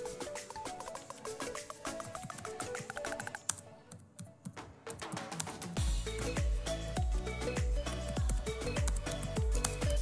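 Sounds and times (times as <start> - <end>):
background music: 0.0 - 10.0
keyboard typing: 1.9 - 5.5, 8.2 - 10.0.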